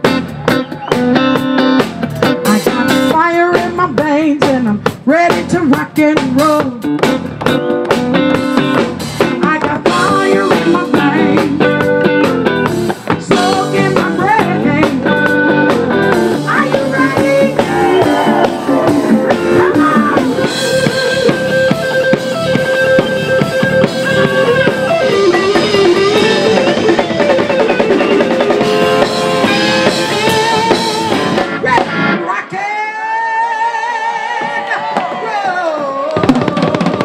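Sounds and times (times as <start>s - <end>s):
drum kit: 0.0s - 32.3s, 36.1s - 37.0s
electric guitar: 0.0s - 32.6s
woman singing: 2.4s - 6.8s, 9.3s - 11.8s, 13.2s - 20.7s.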